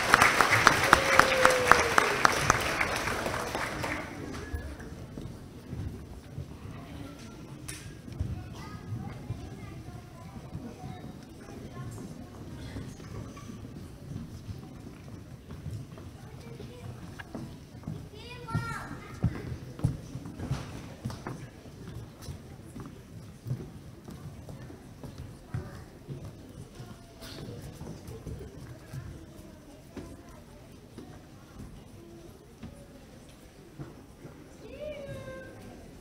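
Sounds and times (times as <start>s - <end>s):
audience murmur: 0.0s - 36.0s.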